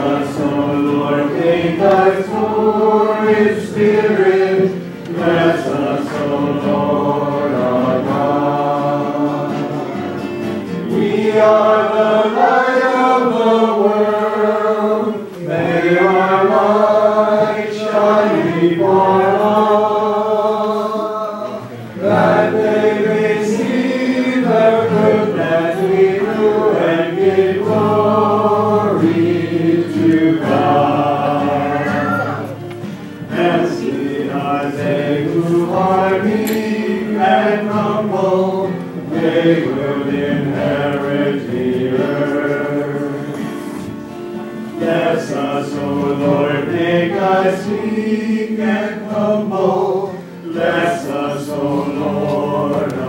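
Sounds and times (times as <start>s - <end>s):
congregation singing a hymn: 0.0s - 53.0s.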